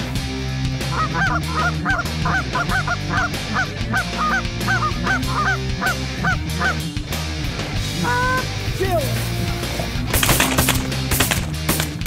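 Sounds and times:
geese honking: 0.8 - 7.0, 7.9 - 8.7.

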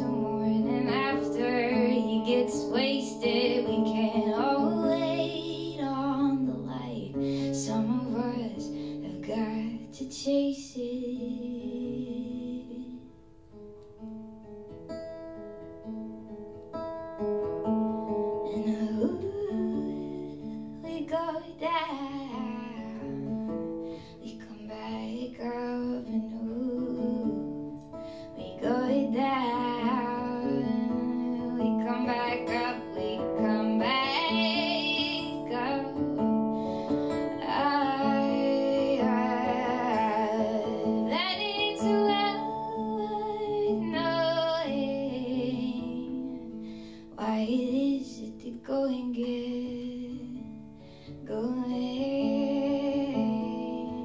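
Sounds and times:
woman singing folk song: 0.0 - 14.5, 15.4 - 54.0
acoustic guitar: 0.0 - 54.0.

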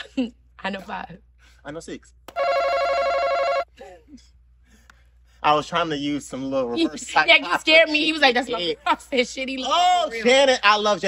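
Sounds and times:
electronic game buzzer: 2.4 - 3.7.

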